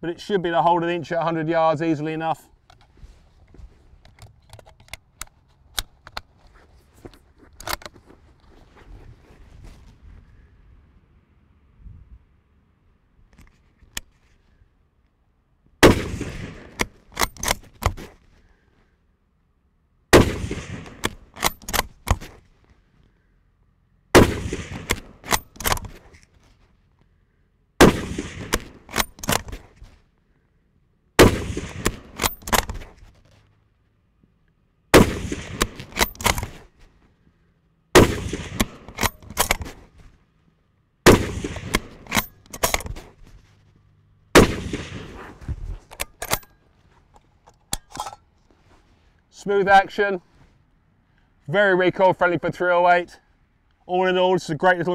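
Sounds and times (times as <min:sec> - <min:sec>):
rifle shots: 0:15.8 - 0:17.6, 0:20.1 - 0:22.0, 0:24.1 - 0:25.9, 0:27.8 - 0:29.6, 0:31.2 - 0:32.9, 0:34.9 - 0:36.6, 0:38.0 - 0:39.8, 0:41.0 - 0:43.1, 0:44.3 - 0:45.4.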